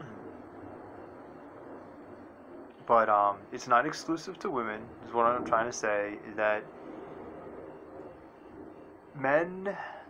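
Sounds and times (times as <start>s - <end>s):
low background hiss: 0.0s - 10.0s.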